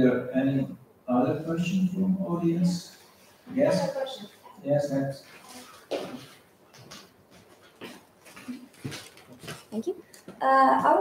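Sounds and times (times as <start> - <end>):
soft footsteps on wooden floor: 5.3 - 11.0.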